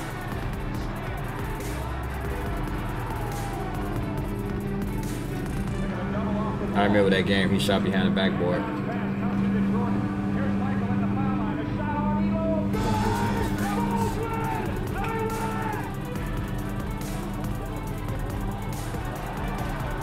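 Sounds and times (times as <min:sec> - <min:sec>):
music with vocals: 0:00.0 - 0:20.0.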